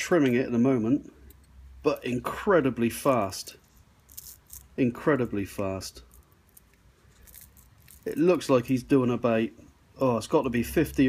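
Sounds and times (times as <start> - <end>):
faint rustles and clicks: 3.5 - 4.8, 5.9 - 8.7.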